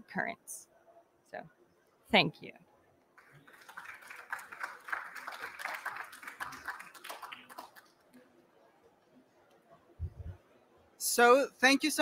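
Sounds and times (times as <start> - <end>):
audience applauding: 3.2 - 8.2.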